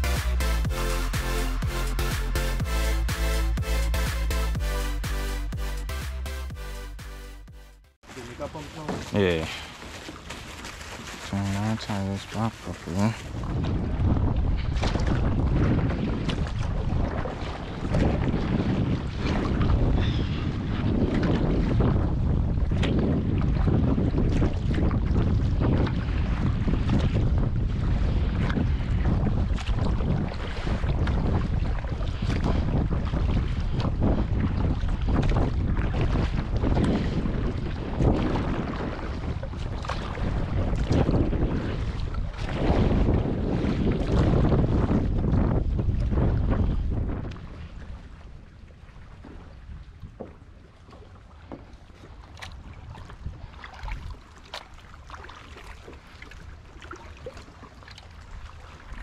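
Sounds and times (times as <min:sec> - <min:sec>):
water slapping kayak: 0:08.0 - 0:59.0
wind buffeting microphone: 0:08.1 - 0:59.0.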